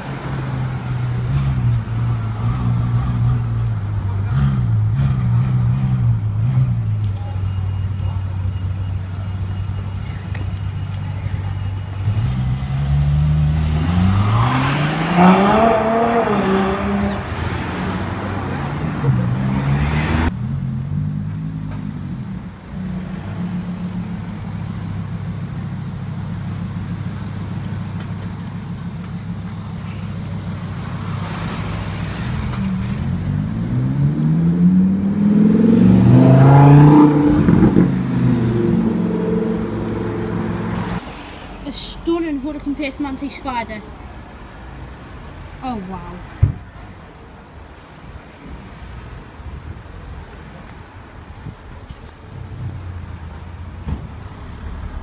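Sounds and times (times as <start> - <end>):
low traffic drone: 0.0 - 55.0
sports car engine revving: 12.0 - 26.9, 29.6 - 41.1.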